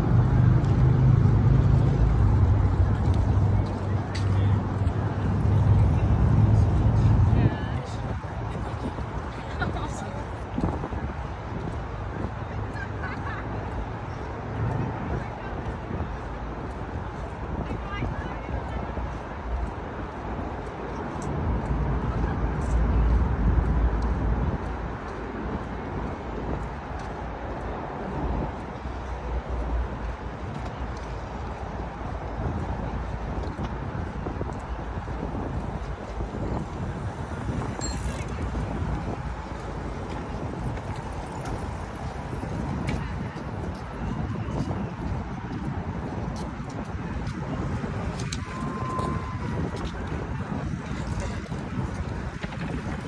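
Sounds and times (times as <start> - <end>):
wind buffeting microphone: 0.0 - 53.0
faint thin tone: 37.8 - 38.3.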